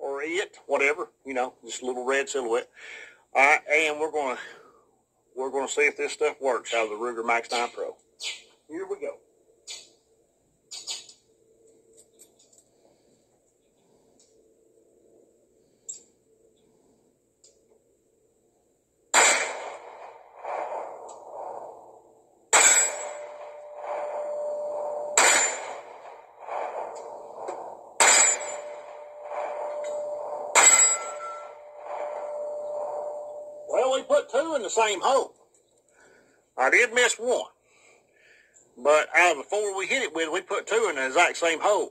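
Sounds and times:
pistol shots with ringing tail: 19.1 - 33.7.

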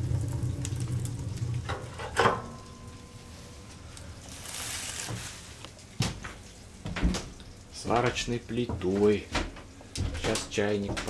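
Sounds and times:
wood fire rumbling: 0.0 - 11.0.

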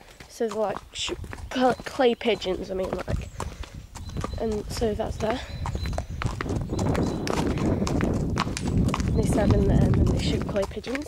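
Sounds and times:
horse hooves clip-clopping: 0.0 - 11.0.

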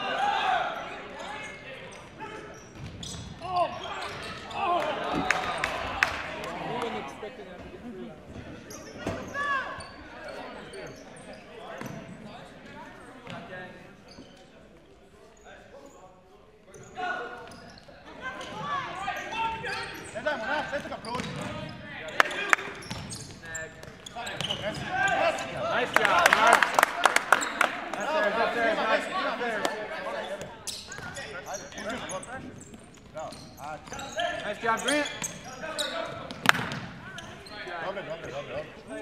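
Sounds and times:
sneakers squeaking: 0.7 - 5.8, 7.6 - 26.1, 27.2 - 28.3, 30.0 - 39.0
ball strikes: 36.3 - 36.9.

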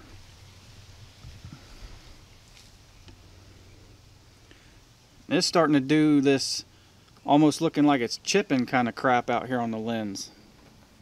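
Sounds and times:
faint steady low hum: 0.0 - 11.0.

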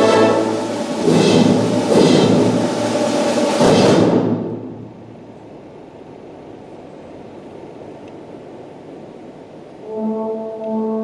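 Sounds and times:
brass band with percussion: 0.0 - 4.6, 9.8 - 11.0.

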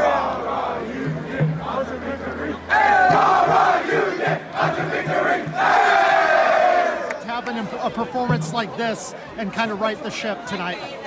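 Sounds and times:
team shouting together: 2.7 - 7.1.

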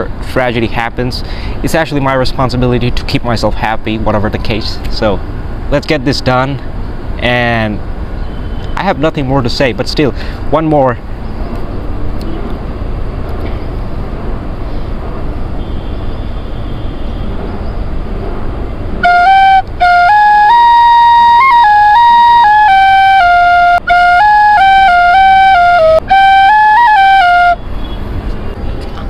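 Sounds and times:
quick breaths: 1.2 - 1.6, 10.1 - 10.5
bamboo flute melody: 19.0 - 27.9.

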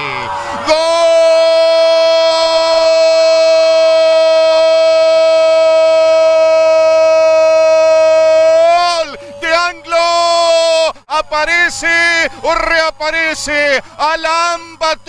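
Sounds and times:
commentator shouting goal: 6.0 - 15.0
man talking excitedly: 8.2 - 15.0.

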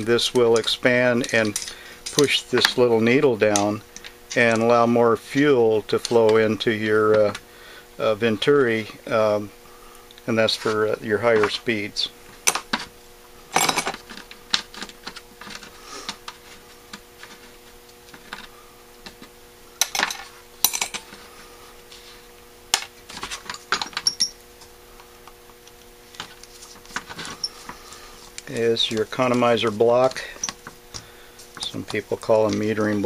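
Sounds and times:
faint steady hum: 0.0 - 33.0
metal parts clinking on workbench: 13.6 - 14.0, 19.8 - 21.1, 23.5 - 24.4.

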